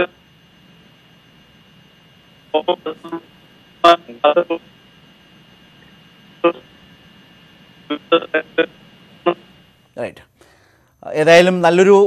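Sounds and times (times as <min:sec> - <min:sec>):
faint telephone line tone: 0:00.0 - 0:09.9
telephone line hiss: 0:00.0 - 0:12.0
man's voice over telephone: 0:02.6 - 0:04.7, 0:07.9 - 0:10.2, 0:11.0 - 0:12.0.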